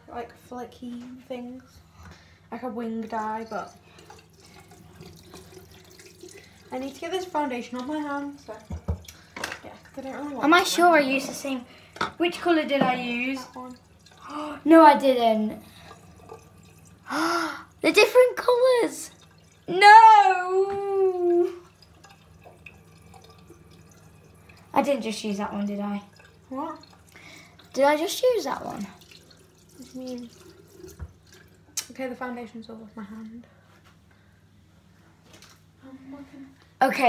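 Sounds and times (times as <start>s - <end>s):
low steady hum: 0.0s - 37.0s
tap running into sink: 7.8s - 10.2s, 11.2s - 13.7s, 30.1s - 31.9s.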